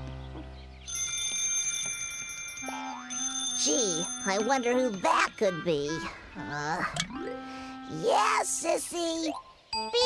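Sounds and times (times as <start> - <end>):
telephone bell ringing: 0.9 - 5.6.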